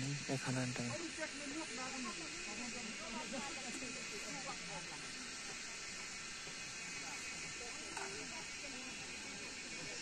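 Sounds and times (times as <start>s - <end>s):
distant voices chattering: 0.0s - 10.0s
steady hiss: 0.0s - 10.0s.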